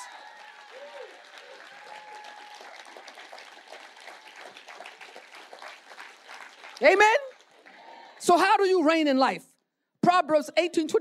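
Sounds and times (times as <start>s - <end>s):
congregation clapping: 0.0s - 8.4s.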